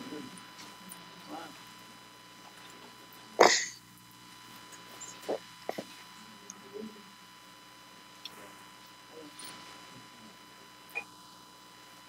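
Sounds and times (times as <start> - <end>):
person sneezing: 3.4 - 3.8.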